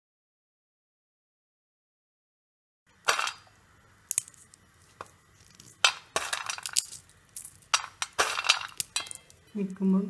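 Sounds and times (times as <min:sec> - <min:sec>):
peanuts rattling on steel plate: 0:03.0 - 0:03.5, 0:04.1 - 0:09.8.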